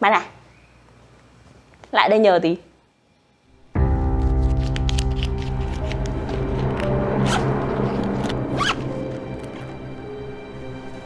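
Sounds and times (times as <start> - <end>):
soft background music: 2.2 - 11.0
zipper being pulled shut: 7.2 - 9.7.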